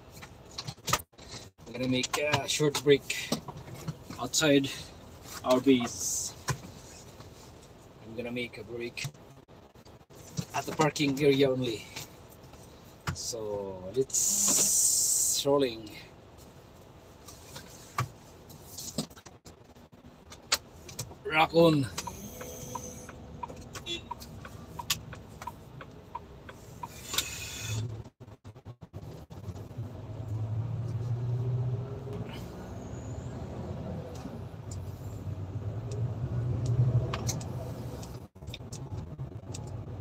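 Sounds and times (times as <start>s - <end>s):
turn signal ticking: 20.2s - 28.1s, 33.8s - 40.0s
diesel truck engine rumbling: 20.8s - 40.0s.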